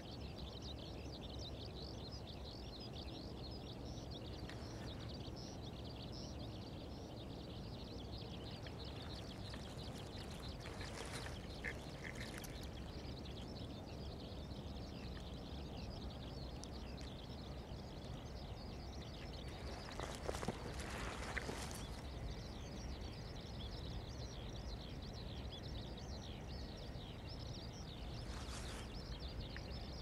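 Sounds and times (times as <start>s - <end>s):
low outdoor rumble: 0.0s - 30.0s.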